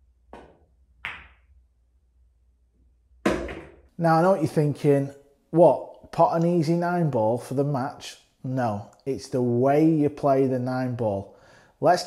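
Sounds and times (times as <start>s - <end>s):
cue tip tapping ball: 0.4s - 1.4s.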